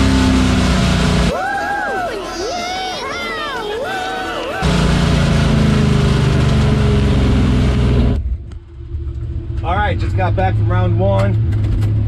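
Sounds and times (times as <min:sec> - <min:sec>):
loud engine drone with hiss: 0:00.0 - 0:01.3, 0:04.6 - 0:08.2.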